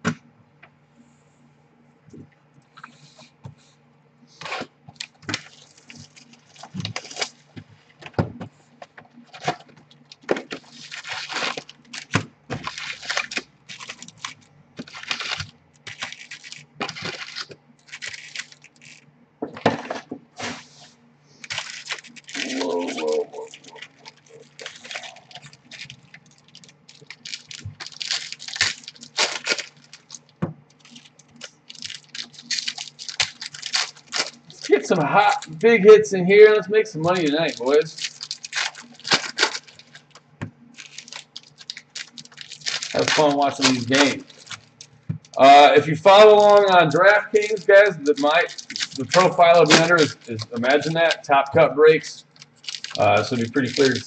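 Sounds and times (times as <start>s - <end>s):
plastic and foil packs crinkling: 4.4s - 8.0s, 9.2s - 19.1s, 21.4s - 54.0s.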